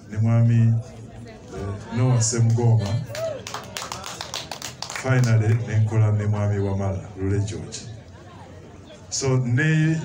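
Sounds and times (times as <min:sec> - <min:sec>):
people clapping: 0:02.4 - 0:05.8.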